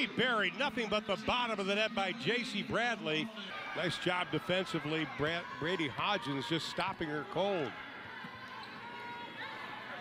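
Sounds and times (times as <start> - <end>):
sneaker squeak: 8.2 - 9.4.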